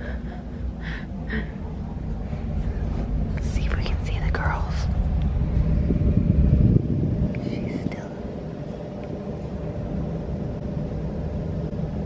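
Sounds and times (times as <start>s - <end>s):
person whispering: 3.4s - 4.9s, 7.3s - 8.3s.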